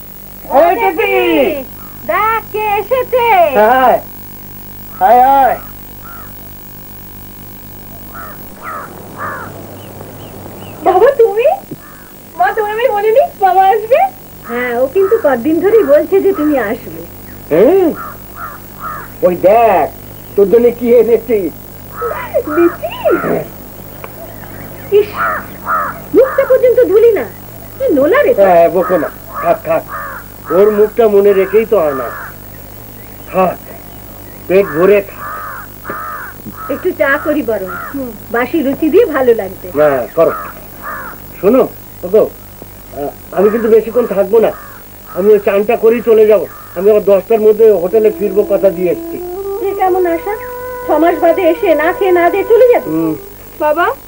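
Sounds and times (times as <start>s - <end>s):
steady low hum: 0.0s - 54.0s
crows cawing: 1.6s - 2.1s, 4.9s - 6.6s, 8.0s - 10.8s, 11.7s - 12.3s, 14.4s - 20.3s, 21.9s - 27.8s, 28.4s - 32.6s, 34.2s - 38.2s, 39.8s - 41.7s, 43.0s - 54.0s
person speaking: 47.3s - 54.0s
short voice sound: 47.7s - 53.7s.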